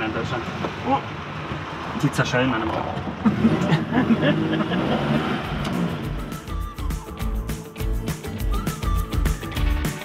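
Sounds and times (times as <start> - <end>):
car engine running: 0.0 - 6.5
music with steady beat: 5.8 - 10.0.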